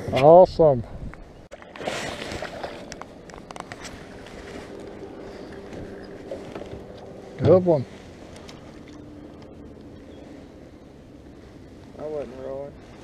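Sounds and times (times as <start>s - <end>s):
knocks and clicks in a boat: 2.6s - 4.9s.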